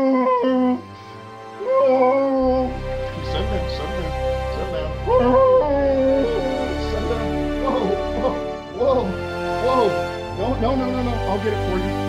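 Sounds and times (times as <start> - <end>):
whimpering baby dinosaur calls: 0.0 - 0.8
background music: 0.0 - 12.0.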